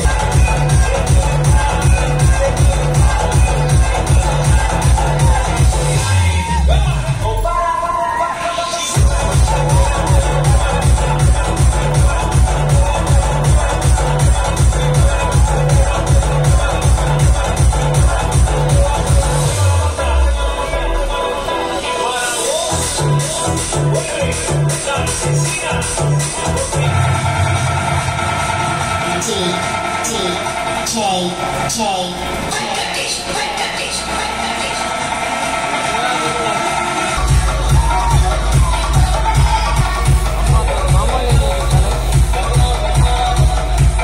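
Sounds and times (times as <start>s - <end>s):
heavy bass kick drum: 0.0s - 7.9s, 9.0s - 21.2s, 34.0s - 44.0s
loud electronic dance music: 0.0s - 44.0s.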